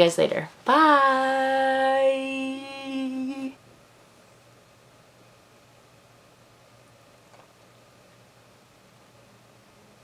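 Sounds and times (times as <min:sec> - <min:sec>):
faint room hiss: 0:00.0 - 0:10.0
woman singing long note: 0:00.7 - 0:03.6.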